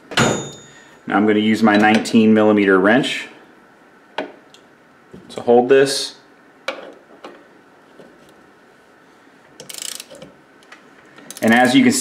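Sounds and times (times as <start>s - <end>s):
torque wrench ratchet clicks: 9.6s - 10.3s, 11.3s - 11.8s.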